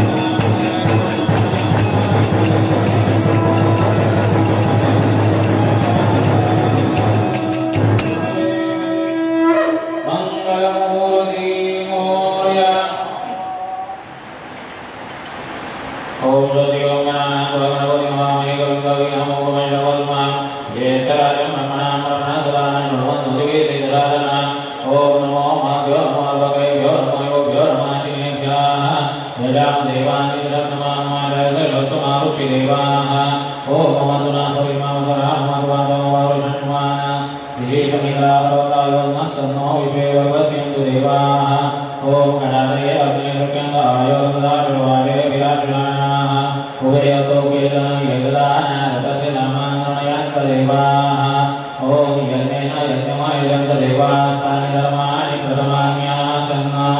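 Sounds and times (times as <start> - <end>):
voices chanting a mantra: 0.0 - 14.2, 16.2 - 56.9.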